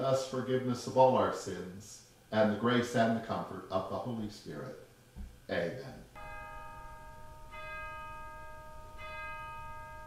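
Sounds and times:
bell ringing: 6.2s - 10.0s.

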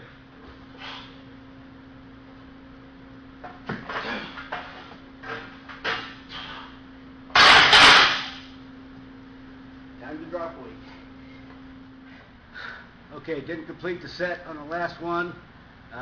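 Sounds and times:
barbell crashing onto metal rack: 7.3s - 8.4s.

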